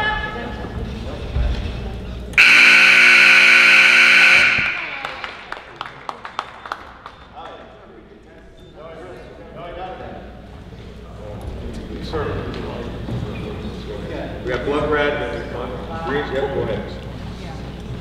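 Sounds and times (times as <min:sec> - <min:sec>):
crowd voices: 0:00.2 - 0:06.3
scoreboard buzzer tone: 0:02.4 - 0:05.6
sharp claps: 0:04.3 - 0:07.3.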